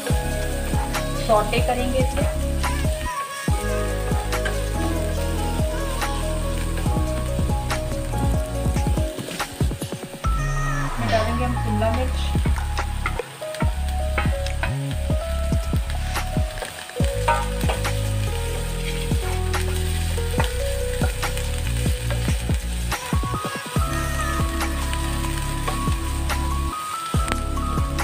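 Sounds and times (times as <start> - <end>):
background music with bass: 0.0 - 28.0
vegetables sizzling in oil: 0.0 - 28.0
wooden spatula scraping a pan: 15.4 - 23.0.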